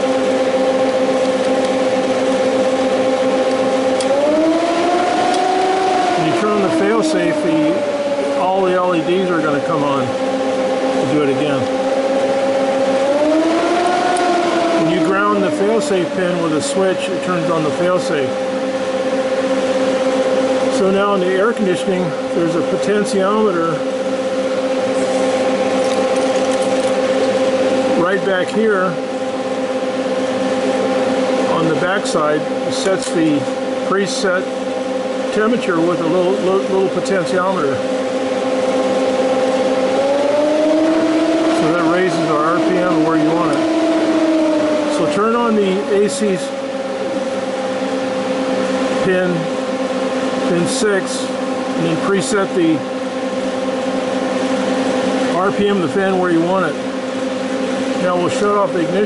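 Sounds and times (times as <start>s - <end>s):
cooling fan motor whine: 0.0s - 59.0s
rushing air from fan: 0.0s - 59.0s.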